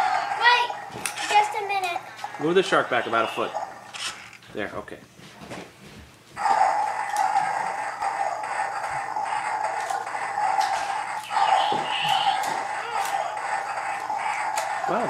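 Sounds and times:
toy electronic sound effects: 0:06.8 - 0:15.0.

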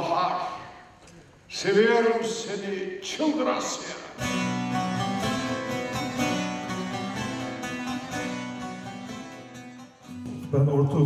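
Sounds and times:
plucked lute melody: 0:04.2 - 0:11.0.

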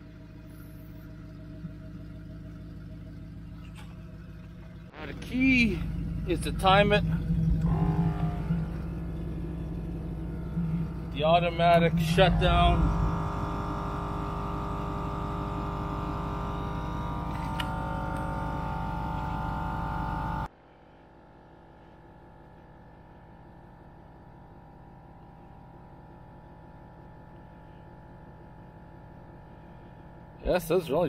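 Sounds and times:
muffled steady hum: 0:00.0 - 0:20.5
air compressor running: 0:07.5 - 0:20.5.

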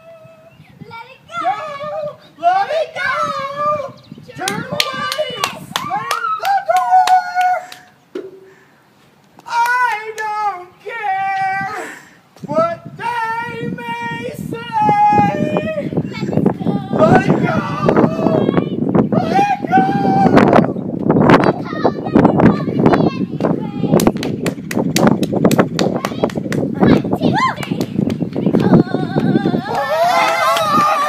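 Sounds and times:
high-pitched voice singing: 0:28.5 - 0:29.9.

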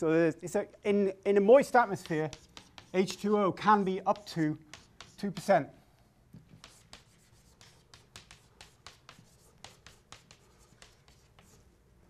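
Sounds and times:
chalk tapping and scraping: 0:01.5 - 0:11.8.

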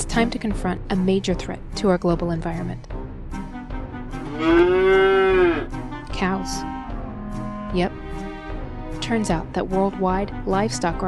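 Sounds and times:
cow mooing: 0:04.2 - 0:05.7.

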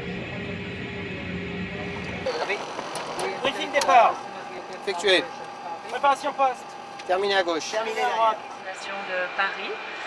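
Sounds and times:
voices: 0:00.0 - 0:09.9
machine drone with held tones: 0:00.0 - 0:10.0.

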